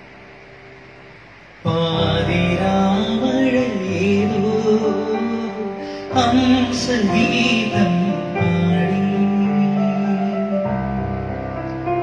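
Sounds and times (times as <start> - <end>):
electronic keyboard chords: 0.0 - 12.0
man singing: 1.6 - 10.8.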